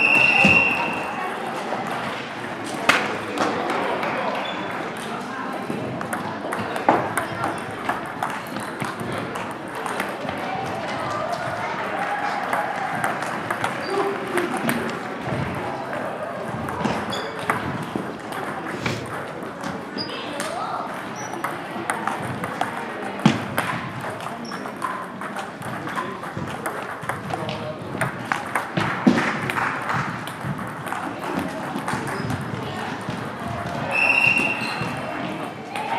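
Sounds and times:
children chattering: 0.0 - 28.8, 30.0 - 35.9
table tennis balls clicking: 1.8 - 35.9.

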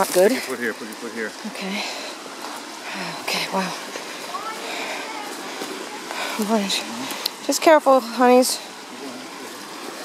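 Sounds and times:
steady outdoor hiss: 0.0 - 10.0.

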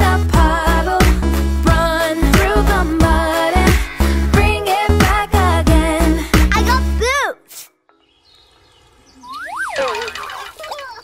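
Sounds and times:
downward-sliding squeaks: 8.4 - 11.0
sliding whistle tone: 9.0 - 11.0.

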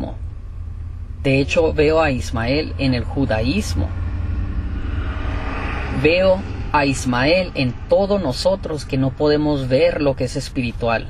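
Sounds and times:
low rumble with hiss: 0.0 - 11.0
person talking: 1.2 - 3.9, 5.9 - 11.0.

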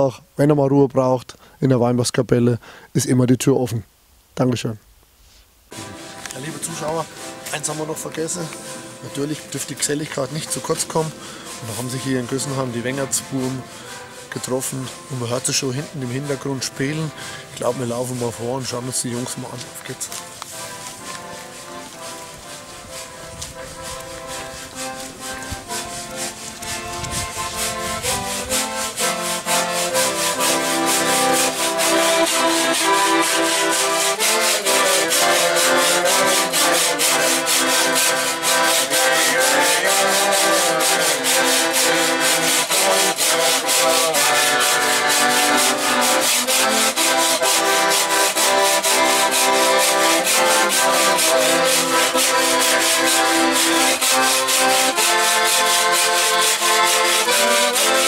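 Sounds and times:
piano accordion playing chords: 5.7 - 58.0
washboard scraping: 5.7 - 58.0.

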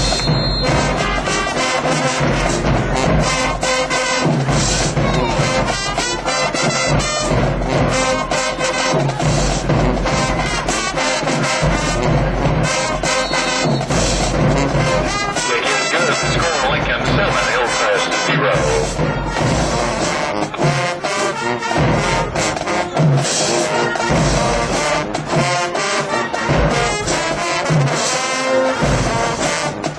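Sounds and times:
brass horns playing: 0.0 - 29.9
steady drum beat: 0.0 - 29.9.

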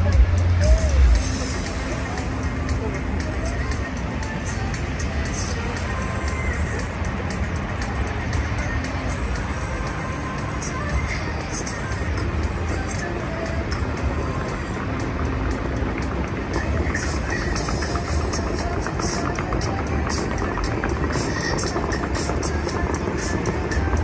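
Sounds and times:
music over loudspeakers: 0.0 - 24.0
water jets spraying: 0.0 - 24.0.

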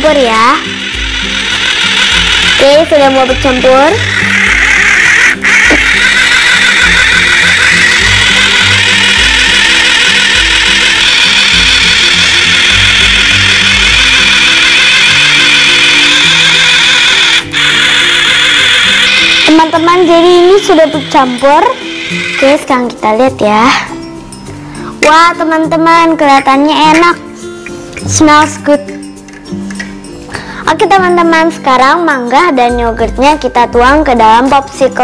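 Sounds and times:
small blender motor whirring: 0.0 - 23.0
background music: 0.0 - 35.0.

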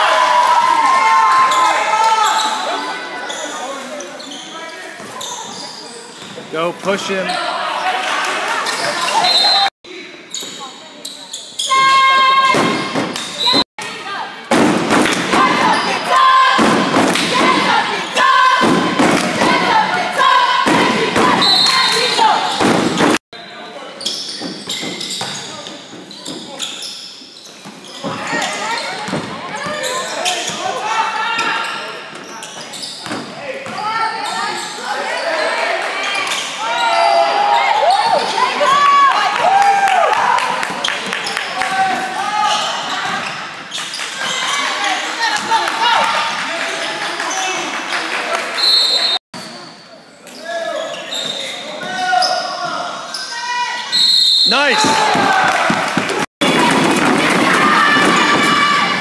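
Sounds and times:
crowd voices echoing: 11.6 - 24.0, 50.7 - 59.0.

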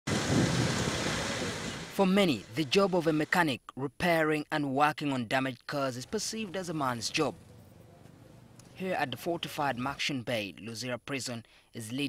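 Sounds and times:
vehicle engine rumbling: 0.1 - 2.9, 6.0 - 9.5.

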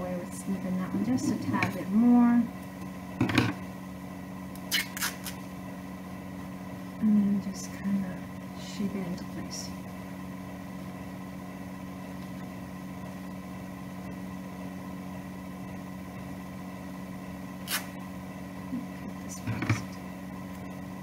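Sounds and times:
electrical hum: 0.0 - 21.0.

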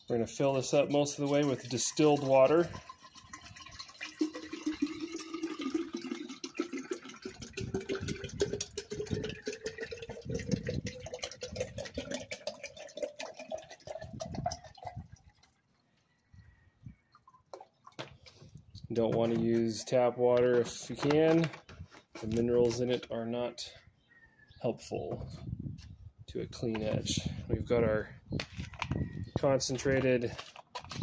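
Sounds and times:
water pouring into a glass jar: 0.2 - 18.0.

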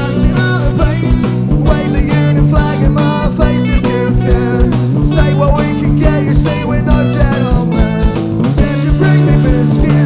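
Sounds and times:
bass guitar: 0.0 - 10.0
drum kit beat: 0.0 - 10.0
electric guitars: 0.0 - 10.0.

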